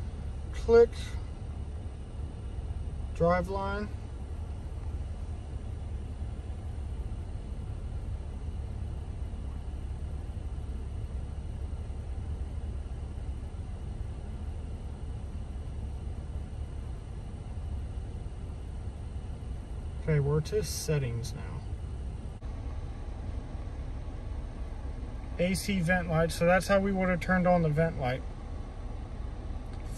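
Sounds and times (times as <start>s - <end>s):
car engine idling: 0.0s - 29.9s.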